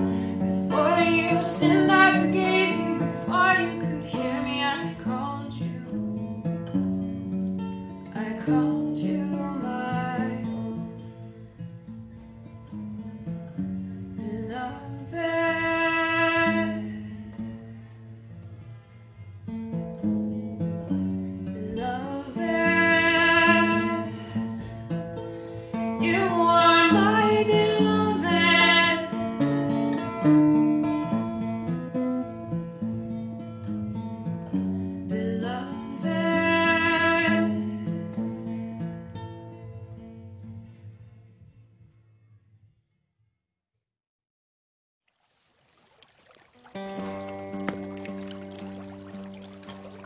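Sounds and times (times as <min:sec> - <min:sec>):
woman singing: 0:00.0 - 0:06.0, 0:08.1 - 0:11.1, 0:14.2 - 0:17.2, 0:21.6 - 0:24.6, 0:26.0 - 0:29.4, 0:35.0 - 0:38.0
acoustic guitar picking: 0:00.0 - 0:41.6, 0:46.6 - 0:50.0.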